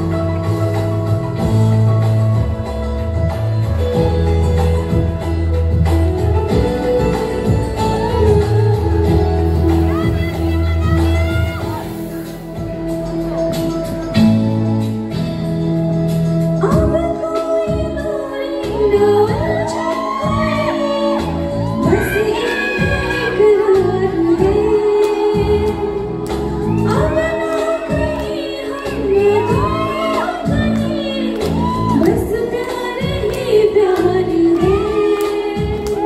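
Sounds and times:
instrumental accompaniment with beat: 0.0s - 36.0s
woman singing into a microphone: 3.8s - 12.6s, 16.5s - 36.0s.

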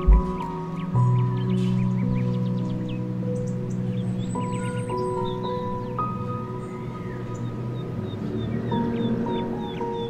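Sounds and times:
bird chirps: 0.0s - 10.0s
slow calm background music: 0.0s - 10.0s.

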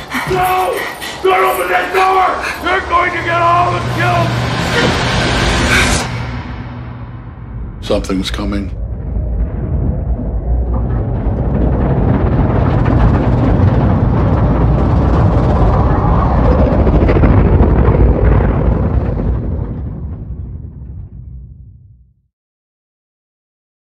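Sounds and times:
deep cinematic rumble: 1.4s - 22.2s.

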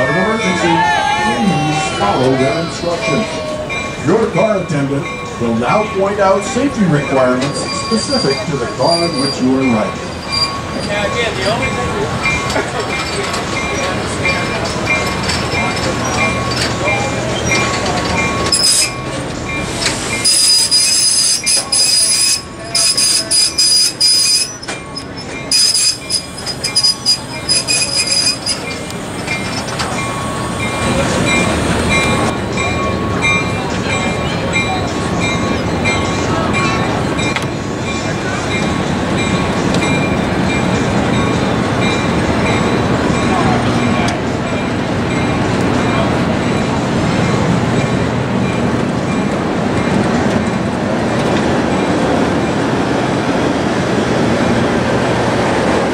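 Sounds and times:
wheels rumbling on rails: 0.0s - 55.9s
train wheels squealing: 7.2s - 11.8s, 12.4s - 32.3s.

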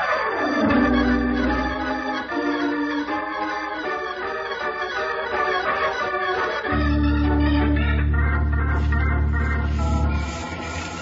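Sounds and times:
sustained organ chords: 0.4s - 10.8s.

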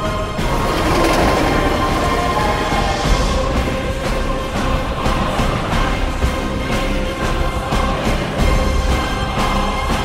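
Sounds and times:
soundtrack music: 0.1s - 10.0s
train wheels on rails: 0.3s - 6.1s.

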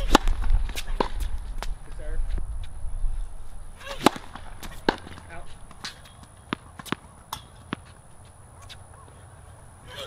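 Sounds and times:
tennis racket hitting ball: 0.0s - 1.7s, 3.8s - 8.0s.

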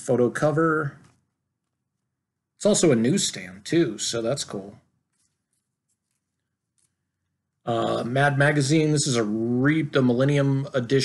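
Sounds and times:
plastic sleeves rustling: 5.0s - 7.3s.

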